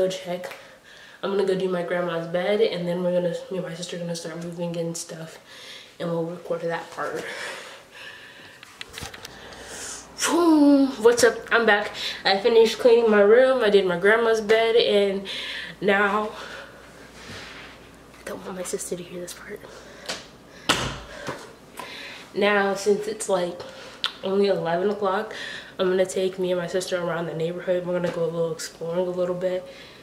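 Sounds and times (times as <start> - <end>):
low room hiss: 0.0 - 30.0.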